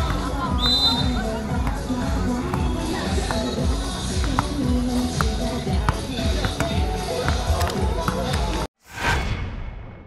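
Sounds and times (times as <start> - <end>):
music playing: 0.0 - 8.7
people talking: 0.0 - 8.7
basketball bouncing: 1.6 - 8.5.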